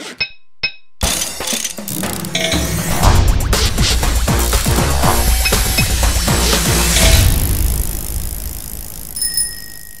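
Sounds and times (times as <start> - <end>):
music: 1.0 - 8.4
bright bell-like ding: 9.2 - 10.0.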